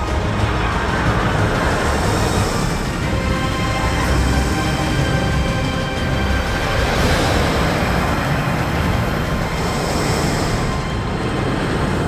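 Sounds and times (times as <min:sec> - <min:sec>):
roller coaster wheels rumbling: 0:00.0 - 0:12.0.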